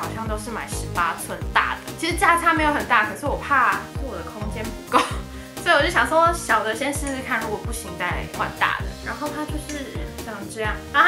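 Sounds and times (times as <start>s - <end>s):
background music with steady beat: 0.0s - 11.0s
woman talking: 0.0s - 11.0s.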